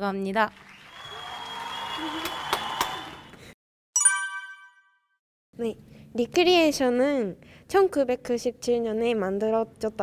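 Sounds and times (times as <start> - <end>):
applause: 0.4 - 3.6
sharp hand claps: 0.6 - 3.4
bright chime: 4.0 - 5.1.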